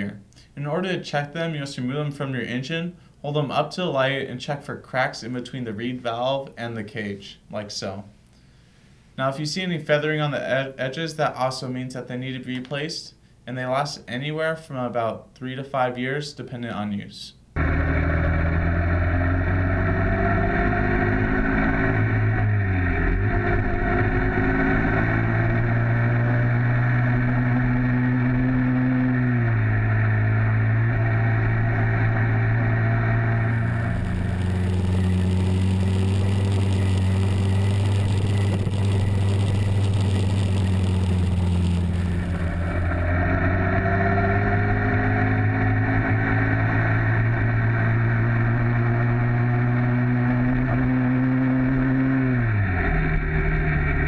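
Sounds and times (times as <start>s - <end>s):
two-stroke engine running: 17.6s - 54.0s.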